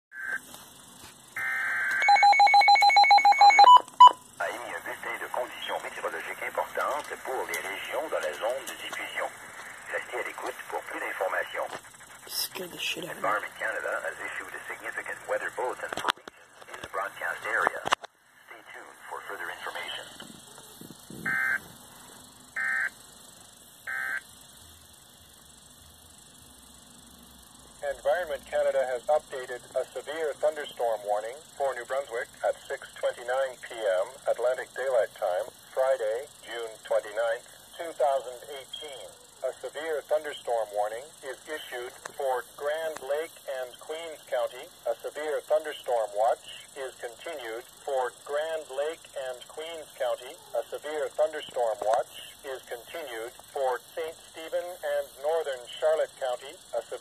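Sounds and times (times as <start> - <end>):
warbling data bursts from radio: 0.2 - 0.5, 1.3 - 24.4, 27.8 - 57.0
rapid electronic alarm beeping: 1.4 - 4.4, 21.2 - 21.8, 22.5 - 23.0, 23.8 - 24.3
synthesized voice speaking: 4.4 - 17.9, 18.5 - 20.2
buzzy digital alert tone: 21.0 - 21.8.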